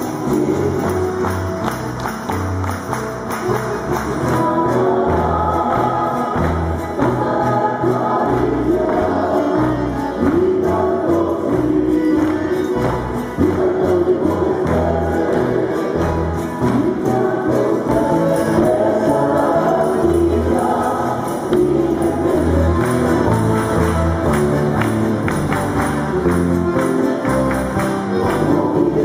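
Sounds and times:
guitar accompaniment: 0:00.0 - 0:29.0
voices singing together: 0:03.9 - 0:26.0, 0:27.3 - 0:29.0.

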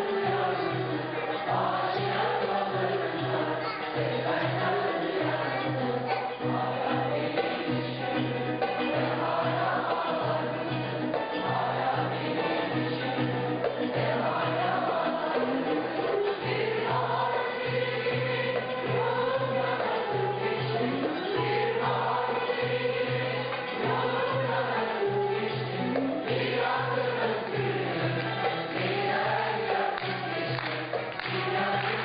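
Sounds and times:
choir singing: 0:00.0 - 0:32.0
instrumental ensemble: 0:00.0 - 0:32.0.

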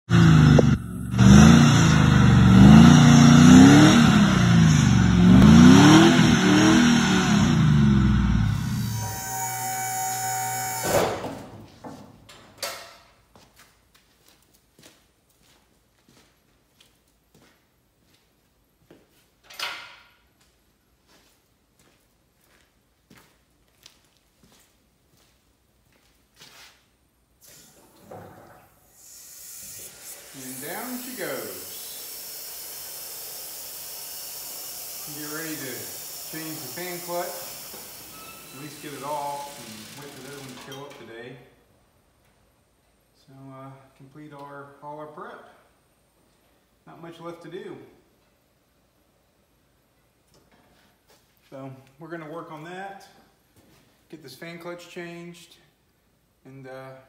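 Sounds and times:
truck engine revving: 0:00.1 - 0:11.2, 0:30.3 - 0:32.2, 0:34.4 - 0:40.7
vehicle lift valve hissing: 0:28.9 - 0:40.7.

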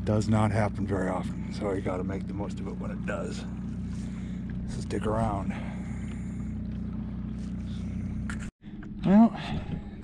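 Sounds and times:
electric trolling motor humming: 0:00.0 - 0:09.0.

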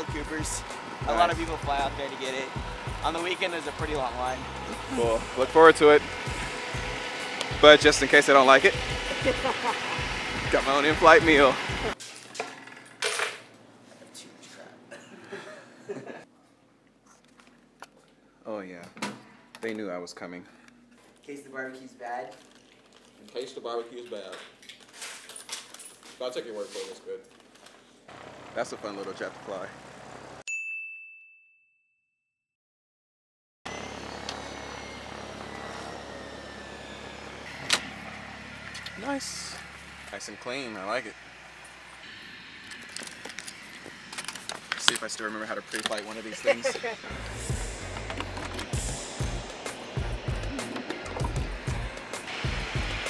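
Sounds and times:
objects clattering on steel table: 0:12.0 - 0:13.5
outdoor background noise: 0:33.7 - 0:53.0
low hum: 0:46.2 - 0:53.0.

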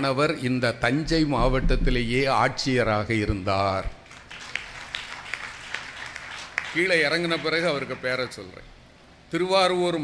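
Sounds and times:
faint hand claps: 0:04.1 - 0:06.9.

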